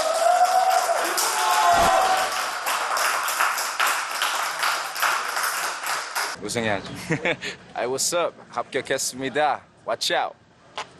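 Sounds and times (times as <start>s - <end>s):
people cheering: 0.0s - 6.4s
people clapping: 0.0s - 6.4s.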